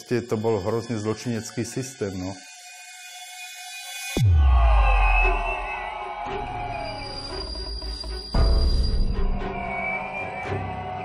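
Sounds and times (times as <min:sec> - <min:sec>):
high screeching tones: 0:05.0 - 0:11.0.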